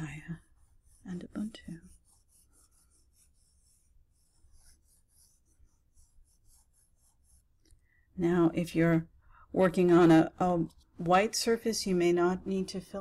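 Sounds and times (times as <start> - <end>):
crayon scratching on paper: 0.0 - 7.6.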